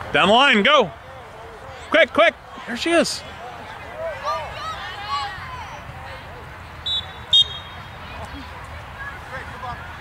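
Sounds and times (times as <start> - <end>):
faint sideline voices: 0.0 - 10.0
referee's whistle blasts: 6.8 - 7.8.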